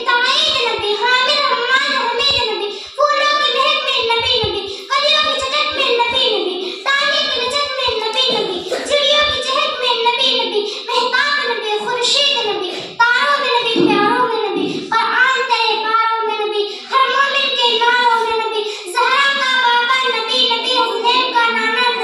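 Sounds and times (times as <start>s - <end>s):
girl chanting a speech: 0.0s - 22.0s
girl breathing: 2.7s - 3.0s, 4.6s - 4.9s, 6.6s - 6.9s, 10.6s - 10.9s, 16.6s - 17.0s, 18.6s - 18.9s.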